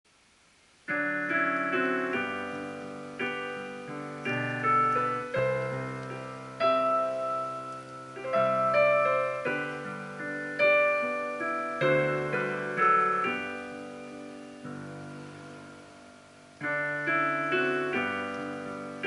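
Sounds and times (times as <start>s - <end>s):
piano playing slow chords: 0.8s - 19.0s.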